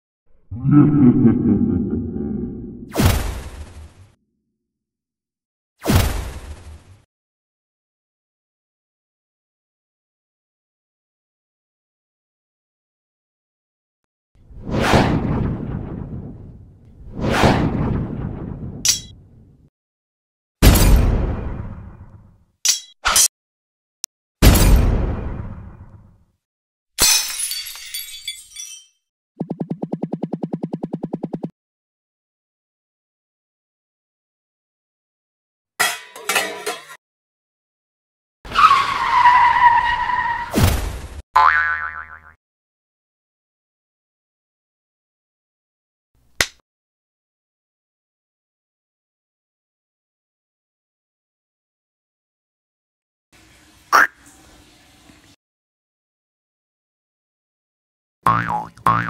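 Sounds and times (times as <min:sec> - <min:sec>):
cartoon tyre screech: 0:38.5 - 0:40.6
wobbling boing: 0:41.4 - 0:42.4, 0:58.3 - 0:59.0.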